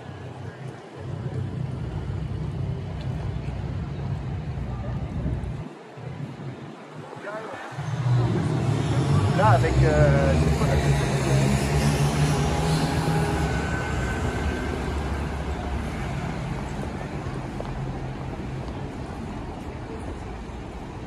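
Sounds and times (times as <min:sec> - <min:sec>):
passers-by talking: 0:00.0 - 0:21.0.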